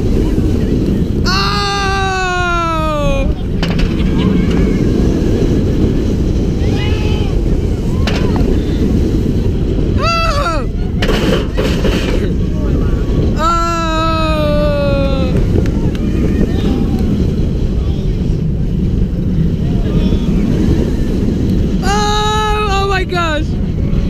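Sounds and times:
riders whooping: 0:00.0 - 0:22.7
wind buffeting microphone: 0:00.0 - 0:24.0.

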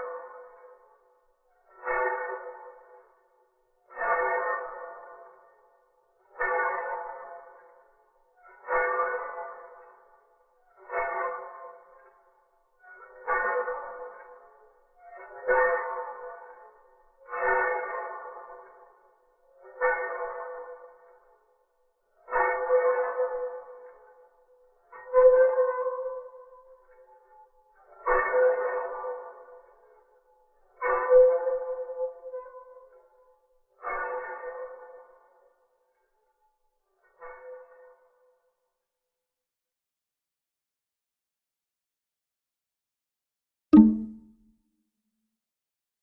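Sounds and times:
ringing ping tone: 0:43.8 - 0:44.3.

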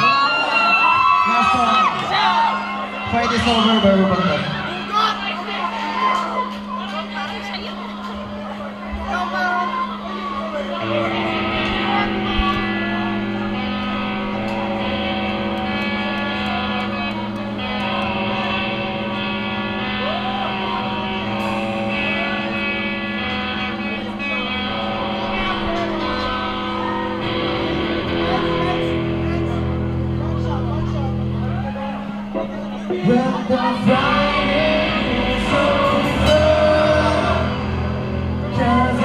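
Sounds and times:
rock band playing: 0:00.0 - 0:06.8, 0:09.7 - 0:39.0
electric guitar sustained chords: 0:00.0 - 0:39.0.

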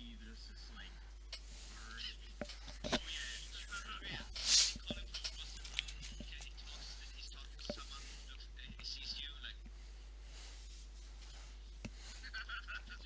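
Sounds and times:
steady low hum: 0:00.0 - 0:13.0
faint whispering: 0:00.1 - 0:09.6
breath noise: 0:00.6 - 0:08.6, 0:09.6 - 0:12.4.

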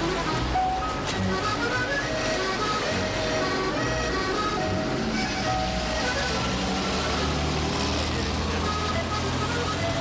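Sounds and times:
low rumble of street noise: 0:00.0 - 0:10.0.

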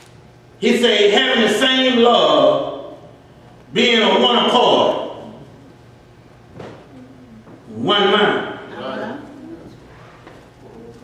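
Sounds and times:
low room hum: 0:00.0 - 0:11.0
man preaching: 0:00.6 - 0:03.1, 0:03.7 - 0:05.5, 0:07.7 - 0:09.3
murmured voices: 0:06.8 - 0:07.8, 0:08.6 - 0:11.0.

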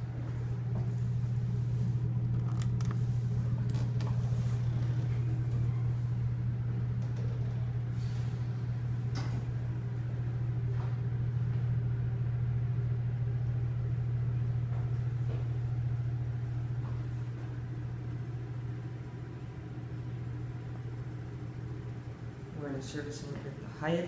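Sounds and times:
elevator low hum: 0:00.0 - 0:24.0.

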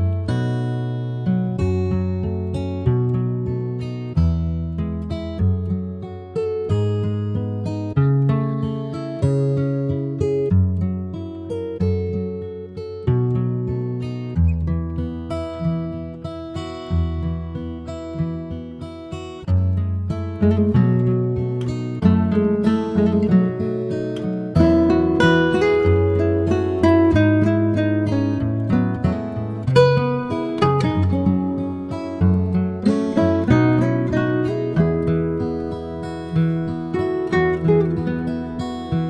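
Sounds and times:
acoustic guitar music: 0:00.0 - 0:39.0.

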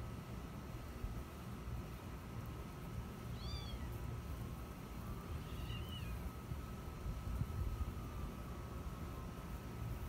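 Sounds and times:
kitten mewing: 0:03.4 - 0:03.9.

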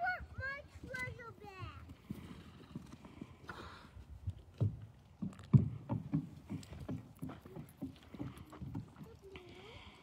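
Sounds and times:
horse hooves on wooden bridge: 0:00.4 - 0:10.0.

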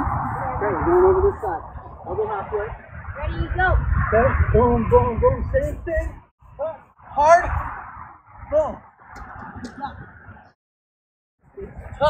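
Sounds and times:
wind rumbling on microphone: 0:00.0 - 0:10.6, 0:11.4 - 0:12.0.

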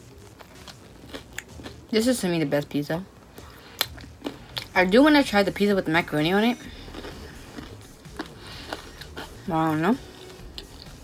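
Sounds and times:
chewing food: 0:00.0 - 0:02.2, 0:03.3 - 0:05.2, 0:06.0 - 0:11.0.

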